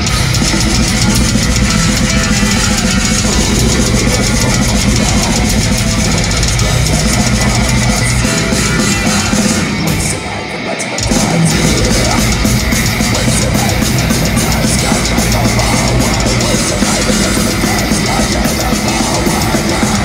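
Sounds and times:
bass: 0.0 - 20.0
distorted electric guitars: 0.0 - 20.0
drum kit: 0.0 - 20.0.

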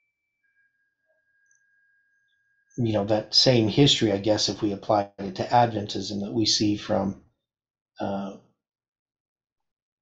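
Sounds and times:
faint steady high tone: 0.0 - 7.0.

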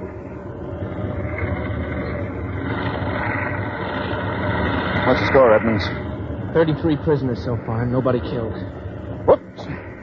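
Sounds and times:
low mechanical vehicle rumble: 0.0 - 10.0.

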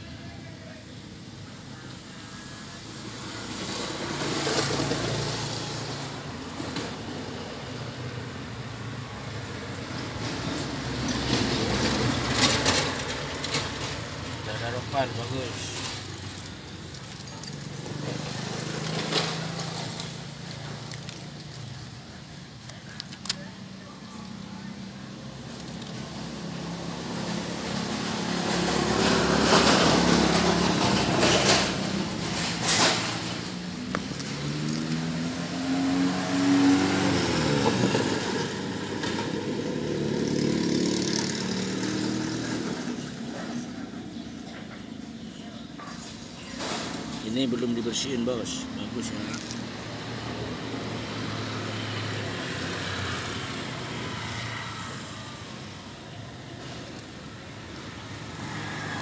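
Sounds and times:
vehicle engine: 0.0 - 59.0.

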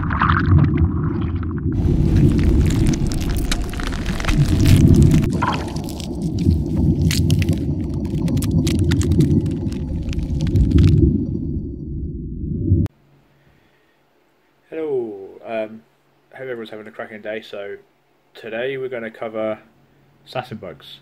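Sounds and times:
deep rumble: 0.0 - 12.9
sharp crackling hits: 1.6 - 12.2.

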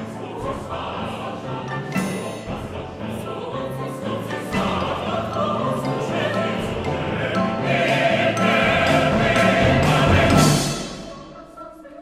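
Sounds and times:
choir and soloists singing: 0.0 - 12.0
percussion: 0.0 - 12.0
pianos: 0.0 - 12.0.

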